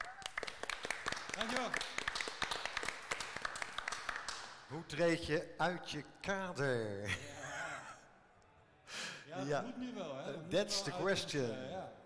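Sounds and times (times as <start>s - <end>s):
people clapping in applause: 0.0s - 4.7s.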